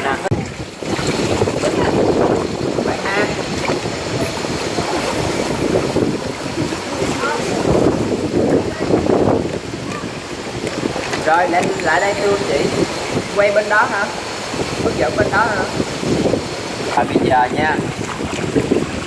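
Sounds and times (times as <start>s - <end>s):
pool water splashing: 0.0s - 19.0s
faint voices: 1.4s - 14.2s.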